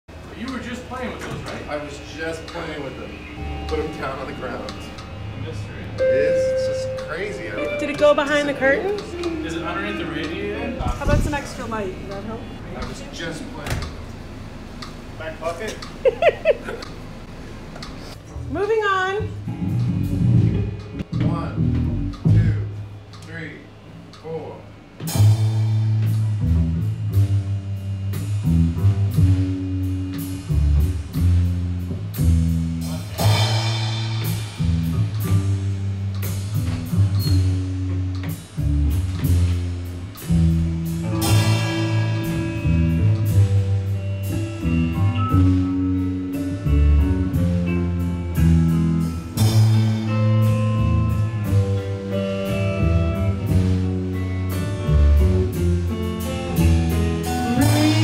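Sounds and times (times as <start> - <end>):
steady low notes: 0.1 - 17.5, 18.1 - 58.0
electric guitar: 3.4 - 11.4, 18.4 - 22.4, 25.0 - 58.0
live band playing: 3.4 - 12.4, 18.5 - 21.0, 25.0 - 58.0
drum kit: 18.4 - 23.1, 25.0 - 58.0
cymbal crashes: 32.9 - 36.6, 41.0 - 44.6.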